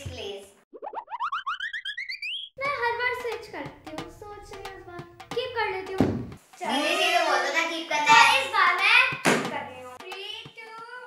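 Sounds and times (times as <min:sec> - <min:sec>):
rising chirping notes: 0:00.7 - 0:02.6.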